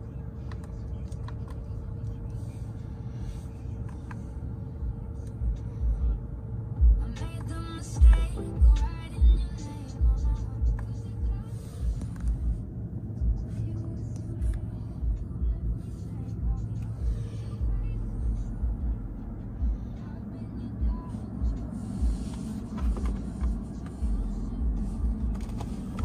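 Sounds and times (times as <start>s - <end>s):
car stereo playing music: 0.0s - 26.0s
steady low hum: 0.0s - 26.0s
voice inside car: 0.0s - 26.0s
irregular low thumps: 6.8s - 7.0s.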